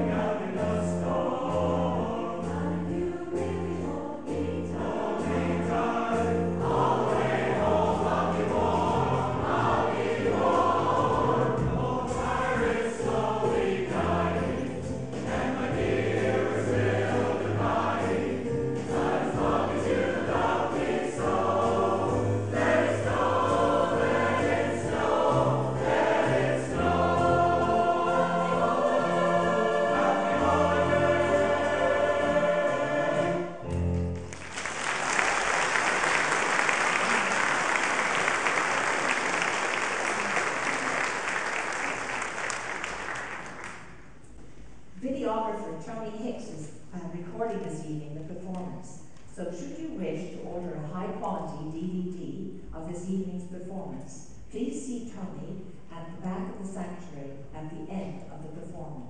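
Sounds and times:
mixed choir singing: 0:00.0 - 0:33.7.

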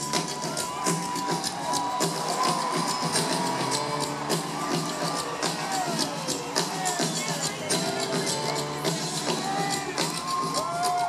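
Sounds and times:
drums keeping time: 0:00.0 - 0:11.0
live rock band instrumental: 0:00.0 - 0:11.0.

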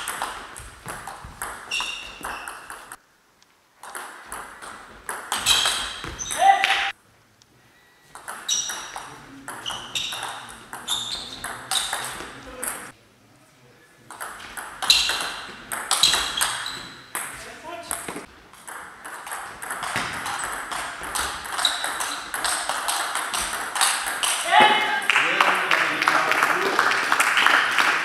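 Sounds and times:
table tennis ball clicking: 0:08.2 - 0:12.8.

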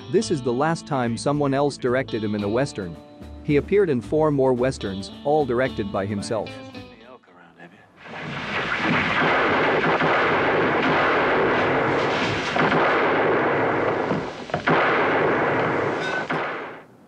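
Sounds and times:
crashing and rumbling: 0:08.0 - 0:16.5
sharp cracks: 0:08.0 - 0:17.0.

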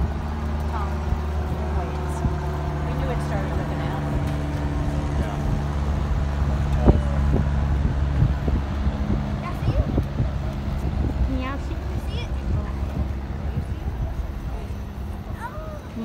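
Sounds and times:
low motor hum: 0:00.0 - 0:16.0
people talking: 0:00.0 - 0:16.0.

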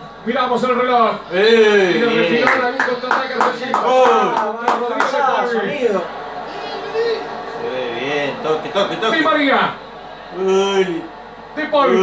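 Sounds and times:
sharp hand claps: 0:02.4 - 0:05.2.

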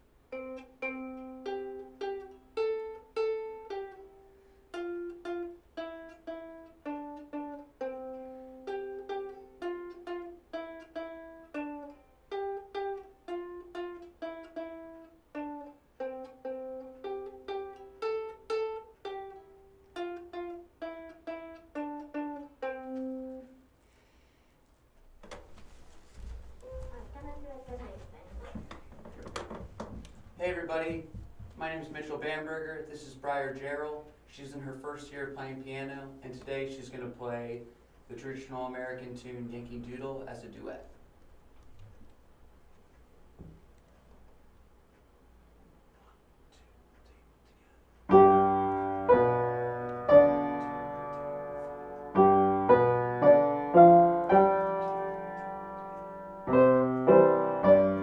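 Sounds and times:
plucked string melody: 0:00.0 - 0:23.6, 0:48.1 - 0:58.0.

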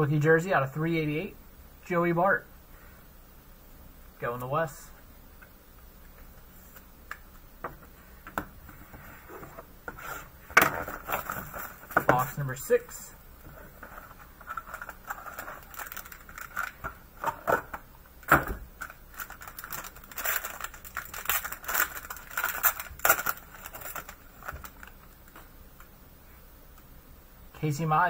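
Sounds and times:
packaging crinkling and tearing: 0:10.7 - 0:12.0, 0:13.7 - 0:17.6, 0:18.2 - 0:25.4.

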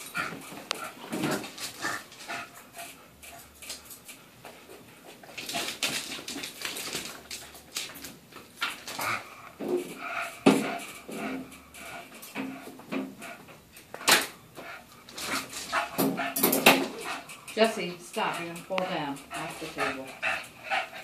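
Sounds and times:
dogs scuffling: 0:00.0 - 0:14.0.

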